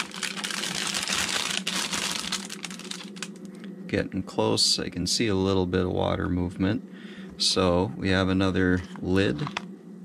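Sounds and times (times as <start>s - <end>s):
plastic film crinkling: 0.0s - 3.5s.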